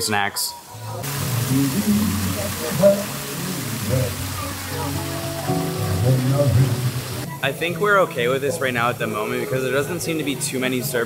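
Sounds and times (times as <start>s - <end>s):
crowd chatter: 0.5s - 11.0s
music: 0.7s - 11.0s
waterfall fountain splashing: 0.7s - 11.0s.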